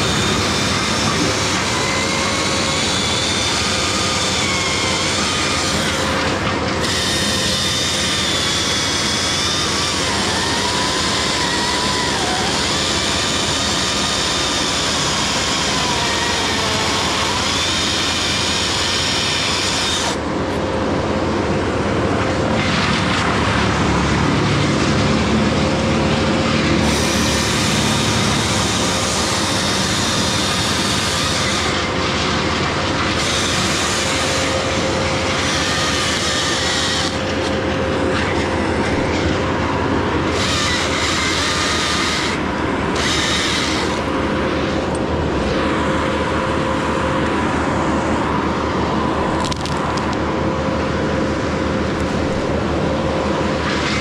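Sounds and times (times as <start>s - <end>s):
chainsaw cutting wood: 0.0s - 20.2s, 26.1s - 38.6s, 40.2s - 44.1s.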